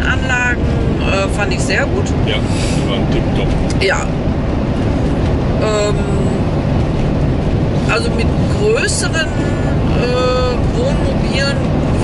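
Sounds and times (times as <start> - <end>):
road and engine noise: 0.0 - 12.0.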